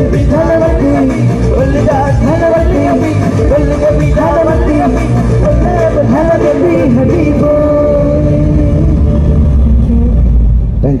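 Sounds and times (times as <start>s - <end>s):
live band music with heavy bass: 0.0s - 11.0s.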